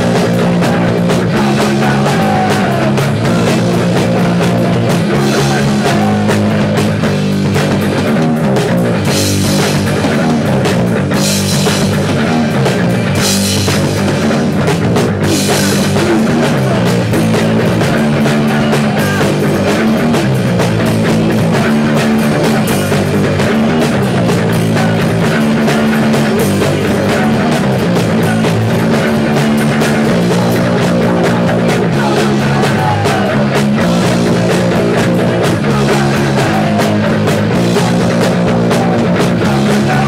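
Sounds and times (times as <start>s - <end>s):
punk rock band playing: 0.0s - 40.0s.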